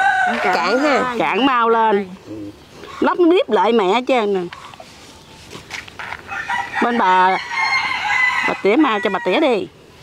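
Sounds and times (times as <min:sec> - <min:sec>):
rooster crowing: 0:00.0 - 0:01.1, 0:06.2 - 0:09.5
woman's voice: 0:00.3 - 0:02.2, 0:03.0 - 0:04.6, 0:06.8 - 0:07.6, 0:08.4 - 0:09.7.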